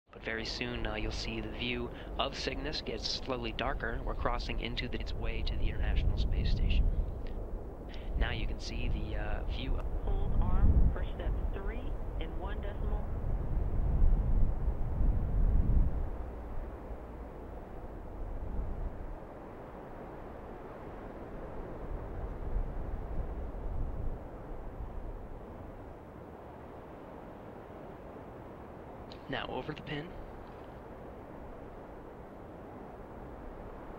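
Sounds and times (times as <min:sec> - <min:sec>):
radio static hiss: 0:00.2 - 0:07.0, 0:07.9 - 0:13.2, 0:29.1 - 0:33.9
low rumble: 0:00.3 - 0:33.9.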